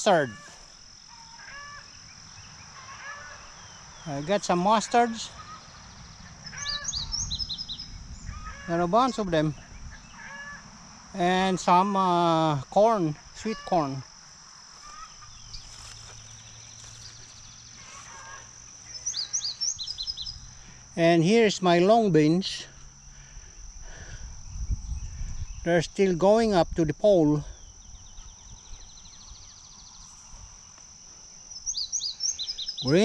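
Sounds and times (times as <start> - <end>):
distant bird calls: 0.0 - 11.7, 13.2 - 21.0, 27.6 - 33.0
high-pitched insect drone: 0.0 - 33.0
steady high-pitched hum: 0.0 - 33.0.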